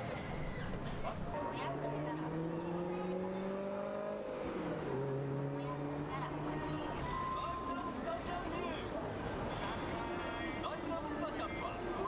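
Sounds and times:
street noise: 0.0 - 12.0
car engine passing: 1.9 - 6.8.

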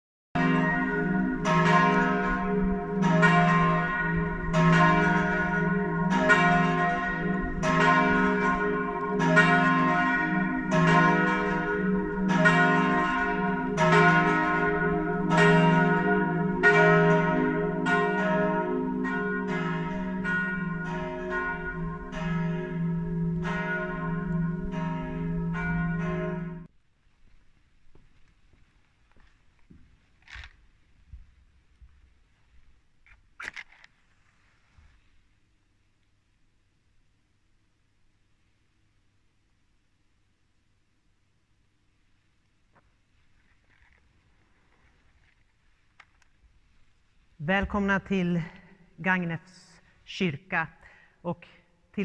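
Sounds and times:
church bell tolling: 0.4 - 26.7, 47.4 - 51.0.

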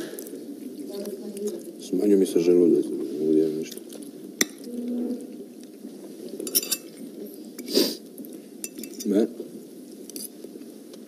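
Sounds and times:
cutlery clinking on plates: 6.4 - 7.0, 8.6 - 9.2.

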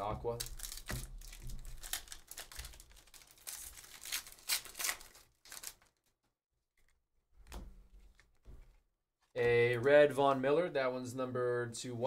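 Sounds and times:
foil wrapper tearing and crinkling: 0.3 - 6.1.

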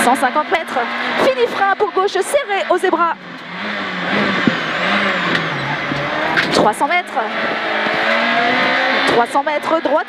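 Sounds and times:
rally car engine from cabin: 0.0 - 10.0
road noise: 0.0 - 10.0.

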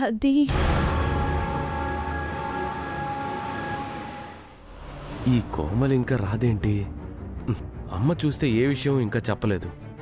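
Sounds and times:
low drone: 0.5 - 6.5
dramatic orchestral chord: 0.6 - 4.5.

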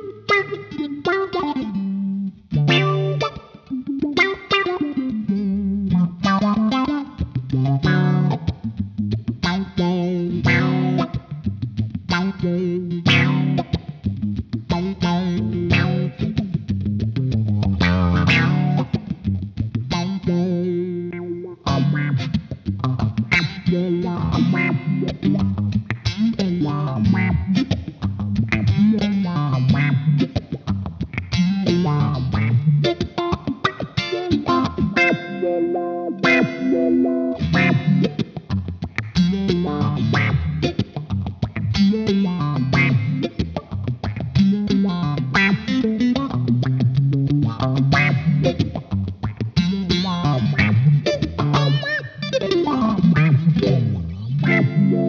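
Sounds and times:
electric guitar funk chords: 0.0 - 55.0.

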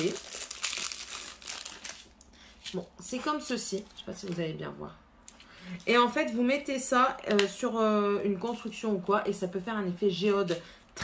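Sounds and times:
plastic packaging crinkling: 0.0 - 2.8.

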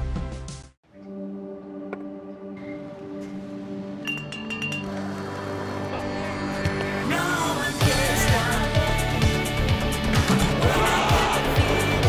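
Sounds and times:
background music: 0.0 - 12.0
glass bottles clinking: 4.0 - 4.9.

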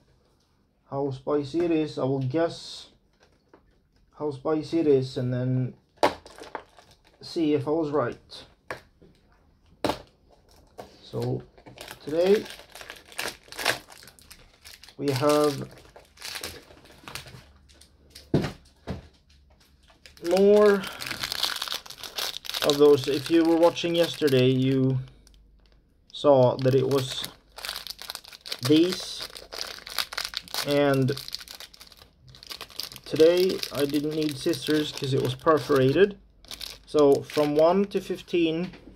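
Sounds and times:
plastic wrapper crinkling: 6.2 - 7.3, 10.3 - 18.3, 19.6 - 37.8.

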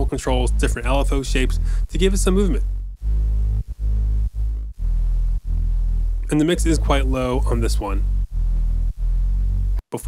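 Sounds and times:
distorted electronic bass synth: 0.0 - 9.8.

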